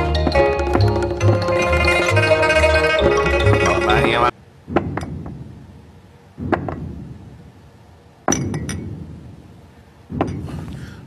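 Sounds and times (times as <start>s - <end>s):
background music: 0.0s - 4.3s.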